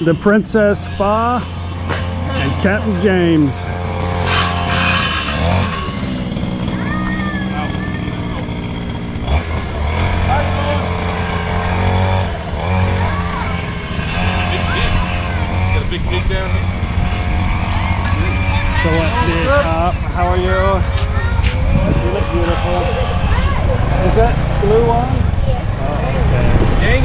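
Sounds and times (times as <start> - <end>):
small motorbike engine running: 0.0 - 27.0.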